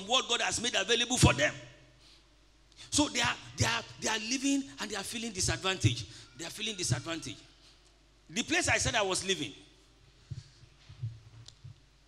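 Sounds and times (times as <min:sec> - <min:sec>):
person speaking: 0:02.9 - 0:07.4
microphone handling thumps: 0:10.2 - 0:11.8.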